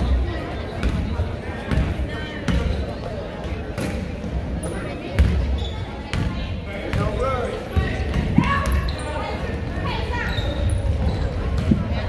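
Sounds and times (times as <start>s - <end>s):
voices in gym: 0.0s - 12.0s.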